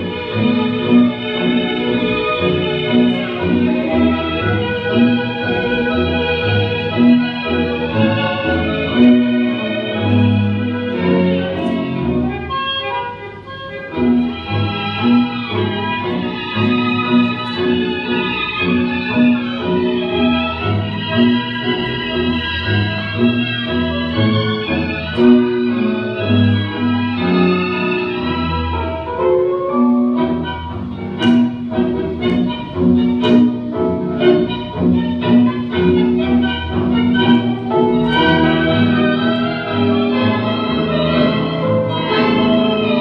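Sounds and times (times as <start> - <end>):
tango orchestra music: 0.0 - 43.0.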